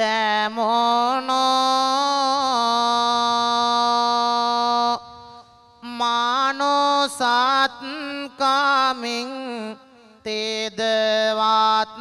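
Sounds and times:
man chanting through microphone: 0.0s - 12.0s.

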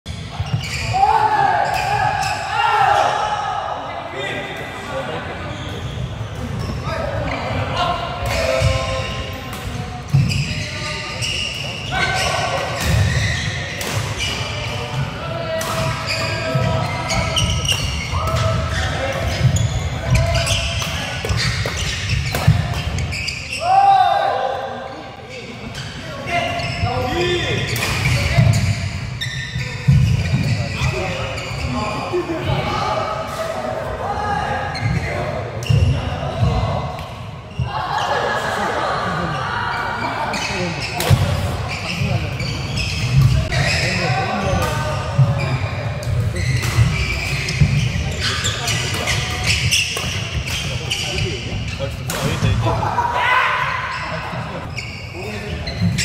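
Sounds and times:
shoes squeaking on floor: 0.1s - 2.5s, 5.5s - 7.6s, 8.3s - 15.0s, 15.8s - 23.8s, 25.2s - 32.3s, 34.6s - 36.6s, 40.0s - 52.4s, 53.8s - 56.0s
rackets hitting shuttlecock: 12.5s - 23.1s, 45.9s - 51.0s, 52.0s - 52.6s.

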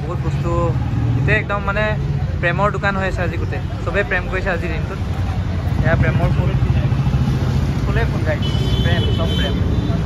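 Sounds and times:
street traffic rumble: 0.0s - 10.0s
people talking: 7.8s - 10.0s.

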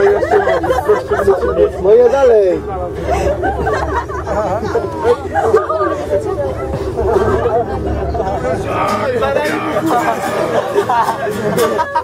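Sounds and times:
people chattering: 0.0s - 12.0s
vehicle hum: 0.0s - 12.0s.

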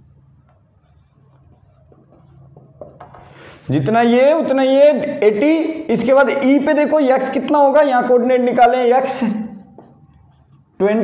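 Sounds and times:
marker scratching on whiteboard: 0.3s - 3.6s, 9.6s - 11.0s.

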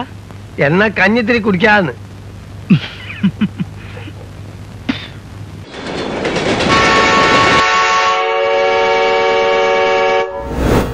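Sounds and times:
train rumbling: 5.6s - 10.9s
train horn blast: 6.7s - 10.6s.

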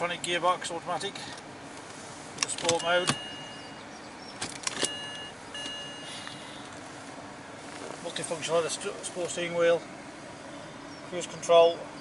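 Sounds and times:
gear selector clicking: 1.3s - 3.3s
thin high electronic tone: 4.9s - 6.5s.

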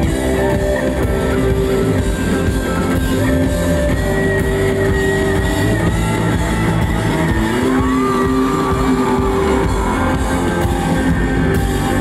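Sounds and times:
electric guitars bending notes: 0.0s - 12.0s
live rock band playing: 0.0s - 12.0s.

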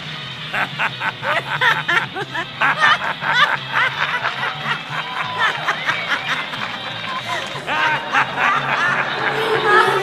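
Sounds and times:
background music with bass line: 0.0s - 10.0s
people laughing: 0.5s - 10.0s.

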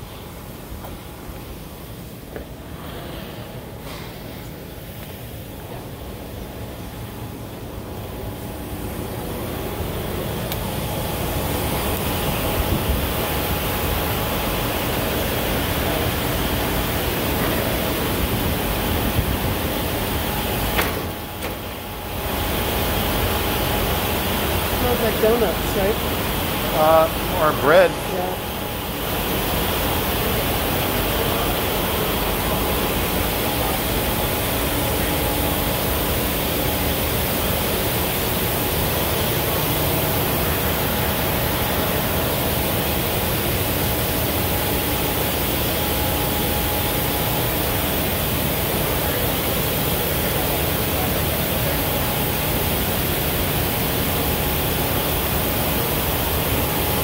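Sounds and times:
machinery and air handling noise: 0.0s - 57.0s
indistinct voices: 26.7s - 28.4s.

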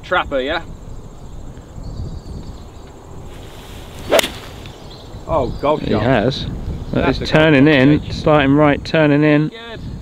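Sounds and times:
golf club swish: 3.3s - 4.8s
golf club striking ball: 4.0s - 4.8s.

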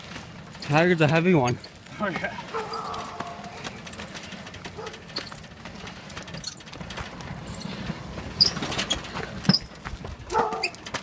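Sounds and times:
tyres crunching over gravel: 0.0s - 11.0s
clicks and rattles: 0.1s - 11.0s.

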